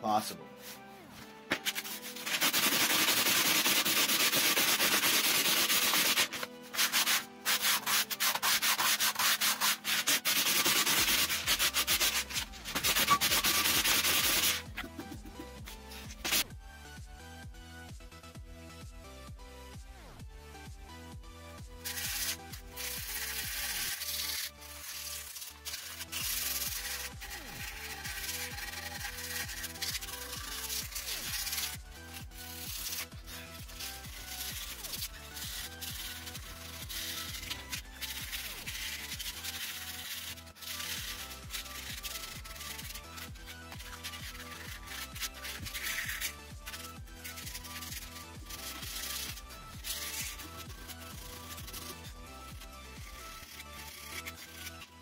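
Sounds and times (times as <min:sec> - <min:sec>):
electronic background music: 0:00.0 - 0:55.0
sandpaper rubbing wood: 0:01.5 - 0:16.4, 0:21.8 - 0:55.0.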